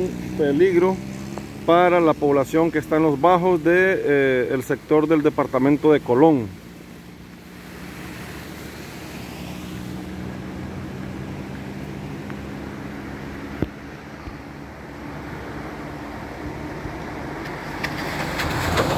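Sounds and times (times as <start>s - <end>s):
vehicle engine humming: 0.0s - 18.9s.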